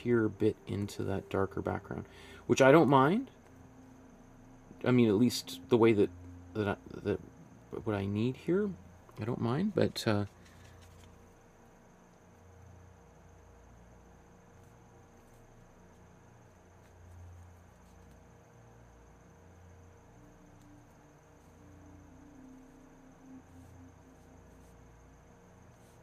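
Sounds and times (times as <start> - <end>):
faint high whine: 0.0 - 26.0
low hum: 0.0 - 26.0.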